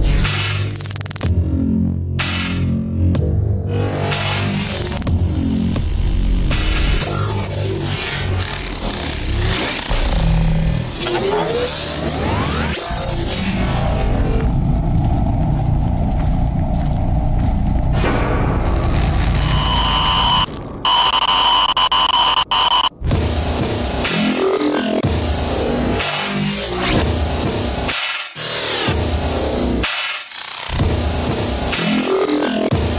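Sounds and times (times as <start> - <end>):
electronic music with deep bass: 0.0 - 32.9
electronic static buzz with high tones: 18.7 - 22.9.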